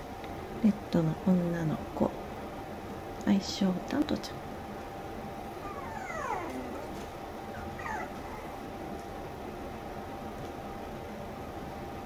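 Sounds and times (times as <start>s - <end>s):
puppy whimpering: 5.6s - 8.7s.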